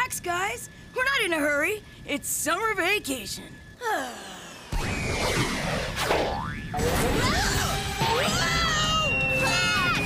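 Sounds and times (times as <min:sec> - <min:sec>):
whistle-like falling and rising tone: 0:04.7 - 0:06.7.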